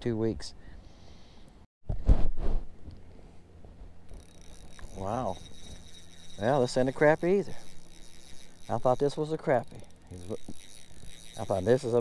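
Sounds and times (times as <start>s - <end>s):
thin high whine: 4.1s - 12.0s.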